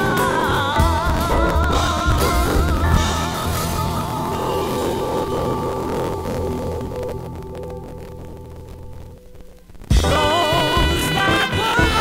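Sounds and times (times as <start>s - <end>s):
jazz band held low chord: 0.0s - 8.3s, 9.9s - 12.0s.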